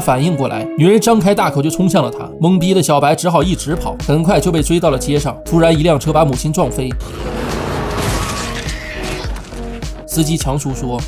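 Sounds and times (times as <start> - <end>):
background music with held tones: 0.0 - 11.0
vehicle crash: 7.0 - 9.8.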